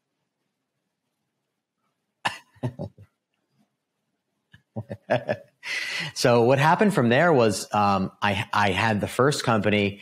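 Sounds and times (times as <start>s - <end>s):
man laughing: 2.3s - 3.0s, 4.8s - 6.2s.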